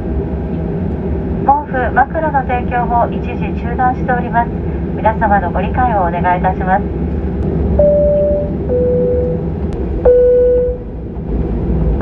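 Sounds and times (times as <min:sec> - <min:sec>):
aircraft cabin drone: 0:00.0 - 0:12.0.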